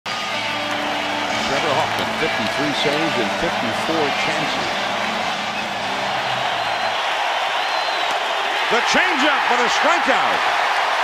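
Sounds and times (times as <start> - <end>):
stadium crowd din: 0.1 - 11.0
man commentating: 1.4 - 4.9, 8.6 - 10.6.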